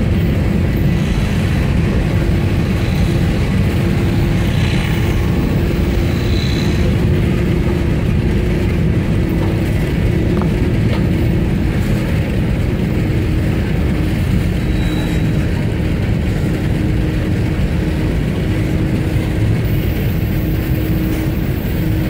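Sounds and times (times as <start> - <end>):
freight train wheels rumbling on rails: 0.0 - 22.0.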